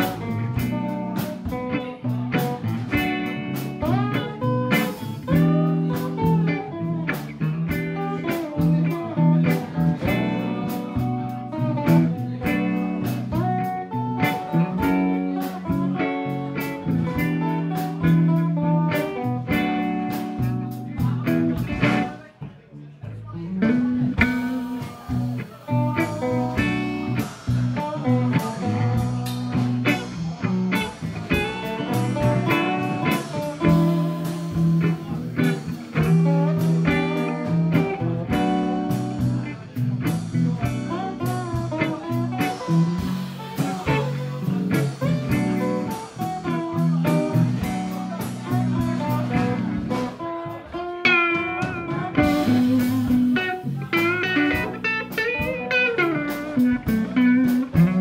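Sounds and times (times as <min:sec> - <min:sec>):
lead guitar bent notes: 0:00.0 - 0:22.3, 0:23.3 - 0:58.0
blues band playing: 0:00.0 - 0:58.0.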